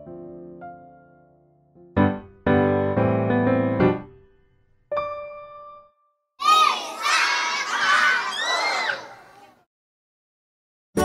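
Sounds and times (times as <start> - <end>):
children shouting and cheering: 6.4 - 9.6.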